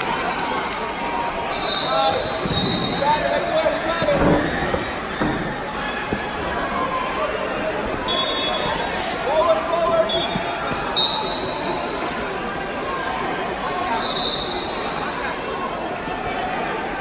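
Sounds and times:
crowd voices: 0:00.0 - 0:17.0.

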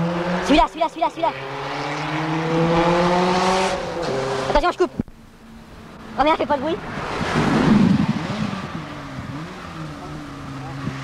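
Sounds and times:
car passing at speed: 0:00.0 - 0:11.0.

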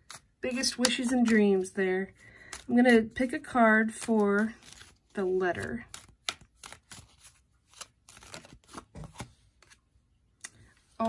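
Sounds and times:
cards being shuffled: 0:00.0 - 0:09.8.

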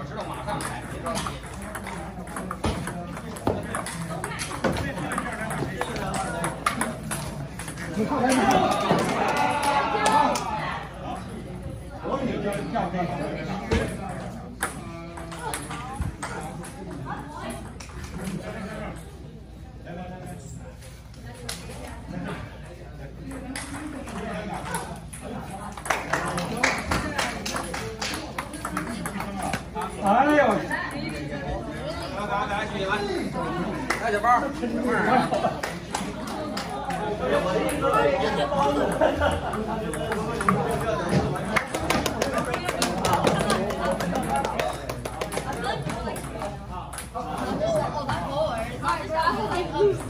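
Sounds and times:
people talking: 0:00.0 - 0:50.0
ping-pong ball clicks: 0:00.6 - 0:08.4, 0:23.3 - 0:24.9, 0:25.8 - 0:30.0.

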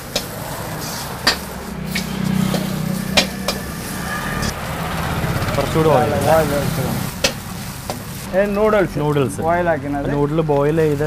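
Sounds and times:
vegetables sizzling in a wok: 0:00.0 - 0:04.6, 0:06.2 - 0:08.6
gas burner hum: 0:00.0 - 0:10.9.

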